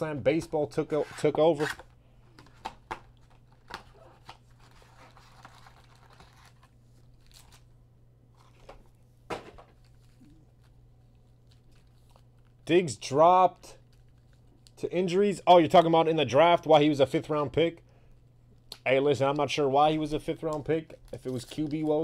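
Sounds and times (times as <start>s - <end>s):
foil packs crinkling and rustling: 3.2s - 7.7s, 20.5s - 22.0s.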